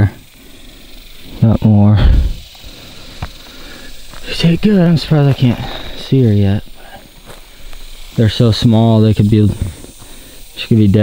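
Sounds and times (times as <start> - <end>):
footsteps through dry grass: 4.0 - 8.2.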